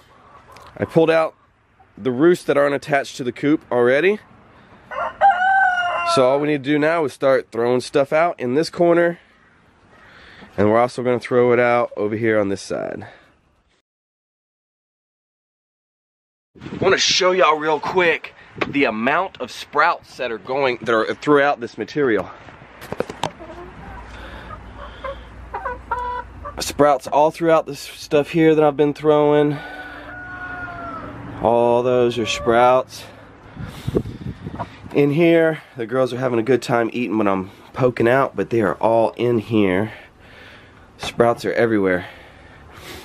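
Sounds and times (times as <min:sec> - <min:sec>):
hens clucking: 0:00.0 - 0:02.3, 0:22.8 - 0:27.0, 0:29.1 - 0:33.2
rooster crowing: 0:04.9 - 0:06.2, 0:29.5 - 0:31.3.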